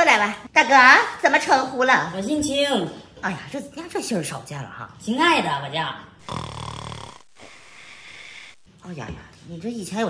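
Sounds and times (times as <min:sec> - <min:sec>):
raspy snore-like throat sound: 0:06.2 - 0:08.6
steady hiss: 0:07.0 - 0:08.7.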